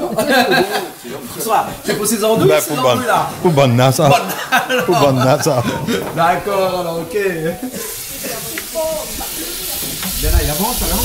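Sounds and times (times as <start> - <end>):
faint talk: 0.0 - 11.0
onions sizzling in a pot: 7.2 - 11.0.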